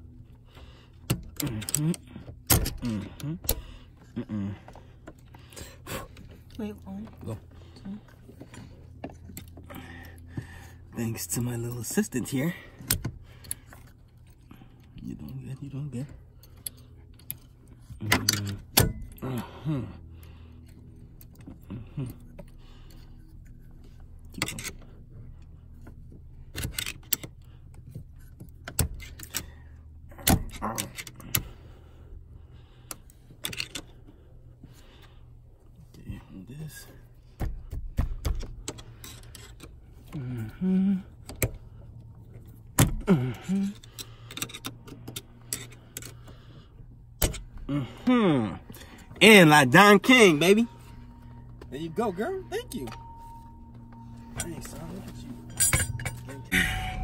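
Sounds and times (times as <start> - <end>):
hand tools clinking on metal: 53.9 - 57.0.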